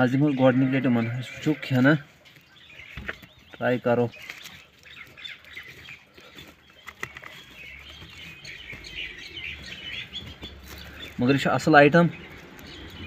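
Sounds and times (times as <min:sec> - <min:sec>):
small birds chirping: 0:00.0 - 0:13.0
hands rustling through silage: 0:02.3 - 0:13.0.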